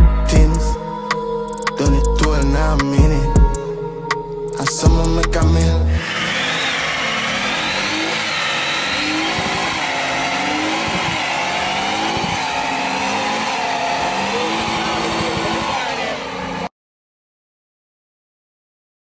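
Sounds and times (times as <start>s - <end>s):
car engine revving: 5.9s - 16.7s
tyres squealing: 5.9s - 16.7s.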